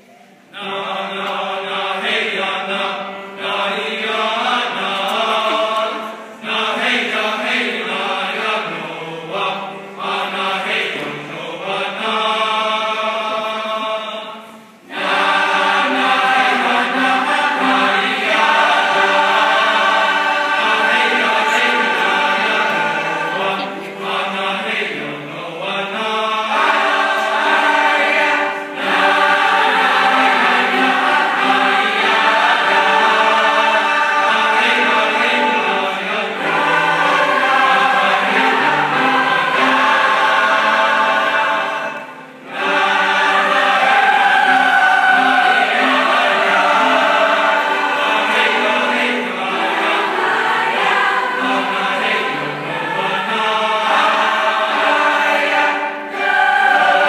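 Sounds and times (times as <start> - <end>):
choir singing in harmony: 0.0 - 57.0
grand piano accompaniment: 0.0 - 57.0.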